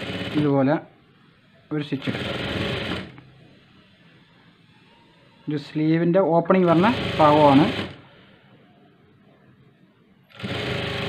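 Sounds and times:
sewing machine stitching: 0:00.0 - 0:00.7, 0:02.0 - 0:03.2, 0:06.7 - 0:08.0, 0:10.3 - 0:11.0.

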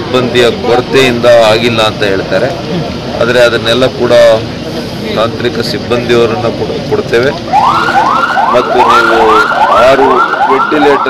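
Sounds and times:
man talking: 0:00.0 - 0:07.4, 0:08.5 - 0:11.0
emergency siren yelping: 0:07.4 - 0:11.0.

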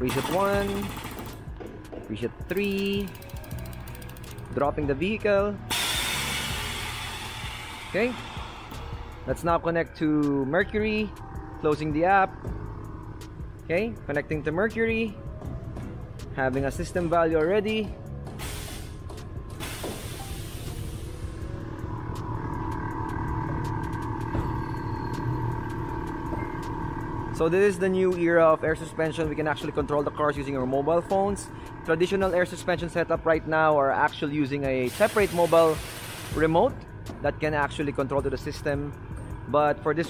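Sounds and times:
air suspension hissing: 0:05.7 - 0:09.3, 0:18.3 - 0:24.6, 0:34.8 - 0:36.7
airflow filling air bags: 0:05.7 - 0:09.6, 0:10.8 - 0:33.7, 0:34.7 - 0:36.8.

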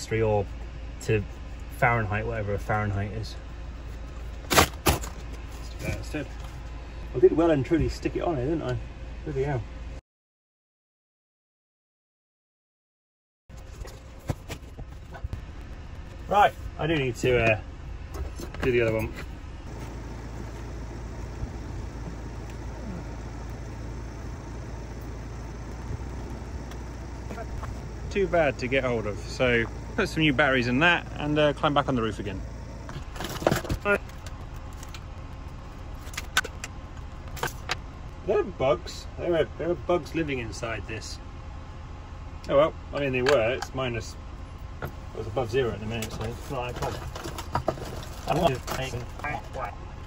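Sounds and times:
low steady hum: 0:00.0 - 0:10.0, 0:13.5 - 0:50.0.

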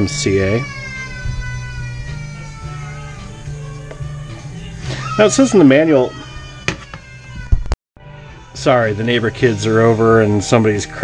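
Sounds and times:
child crying: 0:00.0 - 0:07.7.

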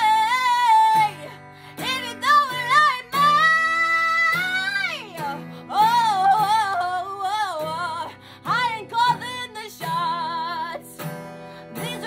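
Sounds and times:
strummed acoustic guitar: 0:00.0 - 0:12.0
woman singing: 0:00.0 - 0:12.0.

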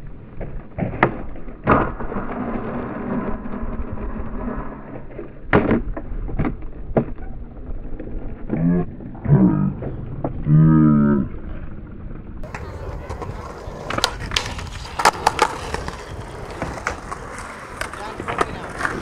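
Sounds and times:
skateboard rolling on concrete: 0:00.0 - 0:19.0
skateboard clacking on ground: 0:12.4 - 0:19.0.

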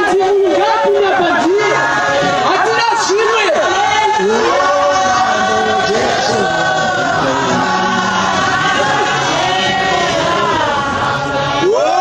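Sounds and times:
congregation singing: 0:00.0 - 0:12.0
man singing into microphone: 0:04.0 - 0:12.0.

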